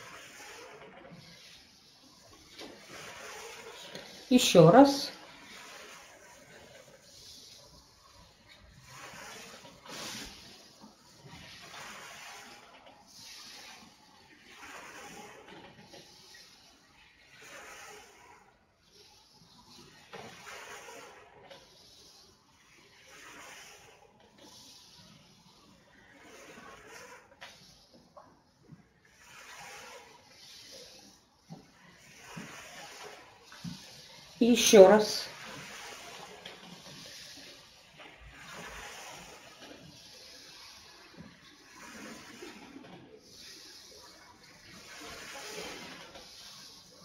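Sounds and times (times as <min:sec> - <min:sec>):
breathy hissing of air: 0:05.1 - 0:18.4, 0:29.2 - 0:42.6.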